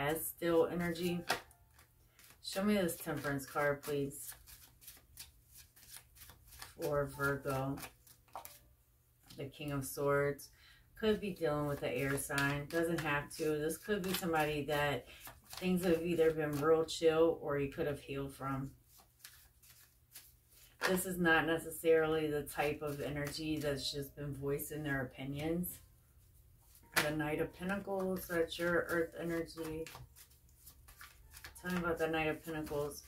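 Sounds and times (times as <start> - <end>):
cards being shuffled: 0.7 - 8.6, 11.6 - 16.8, 18.8 - 21.0, 26.7 - 33.0.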